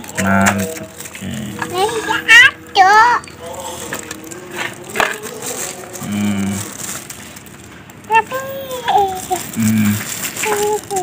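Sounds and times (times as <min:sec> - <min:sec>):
plastic bags crinkling: 0:00.0 - 0:02.5, 0:03.4 - 0:11.0.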